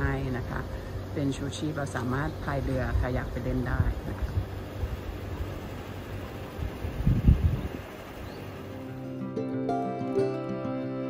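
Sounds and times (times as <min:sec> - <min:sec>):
wind buffeting microphone: 0:02.3 - 0:05.6, 0:06.2 - 0:08.6.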